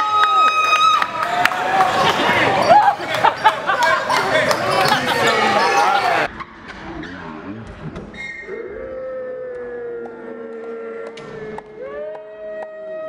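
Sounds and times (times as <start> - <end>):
voices echoing in gymnasium: 0.0 - 13.0.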